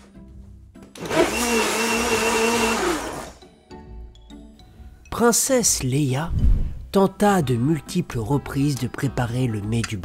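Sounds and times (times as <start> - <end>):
electric blender motor: 1.0 - 3.4.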